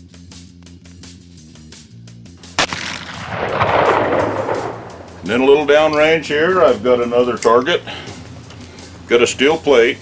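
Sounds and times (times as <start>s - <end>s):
intro music with steady beat: 0.0s - 7.2s
gunshot: 2.4s - 5.6s.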